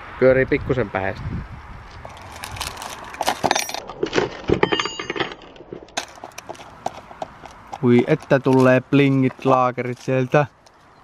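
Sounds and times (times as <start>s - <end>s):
short metallic rings: 4.6s - 6.2s.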